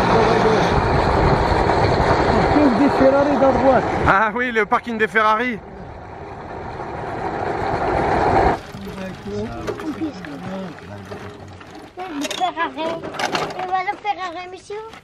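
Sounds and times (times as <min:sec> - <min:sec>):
moped engine and rushing air: 0:00.0 - 0:04.2, 0:05.6 - 0:08.7
people talking: 0:02.3 - 0:05.6, 0:08.7 - 0:14.9.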